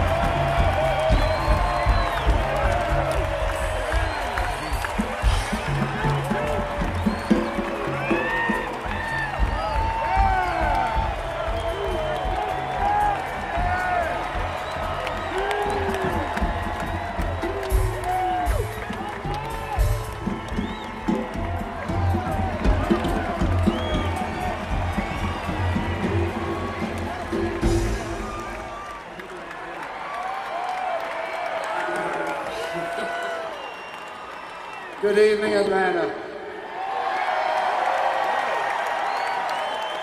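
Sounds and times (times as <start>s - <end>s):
people whooping and shouting: 0.0s - 36.0s, 36.6s - 40.0s
stadium crowd roar: 0.0s - 40.0s.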